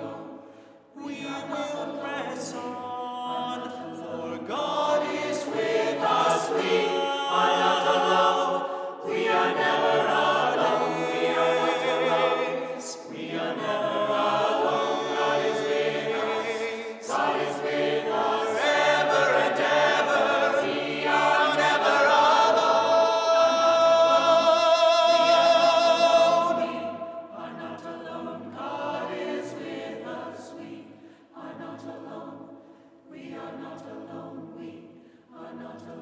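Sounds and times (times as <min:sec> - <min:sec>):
mixed choir singing a cappella: 0:00.0 - 0:36.0.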